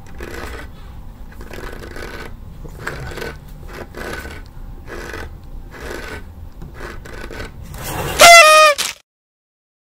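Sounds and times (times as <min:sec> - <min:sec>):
phone scraping against door and clothes: 0:00.0 - 0:08.7.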